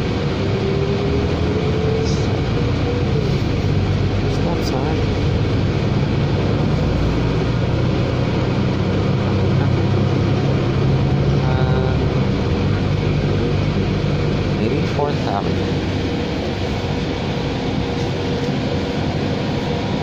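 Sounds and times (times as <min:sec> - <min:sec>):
bus engine drone: 0:00.0 - 0:20.0
road noise: 0:00.0 - 0:20.0.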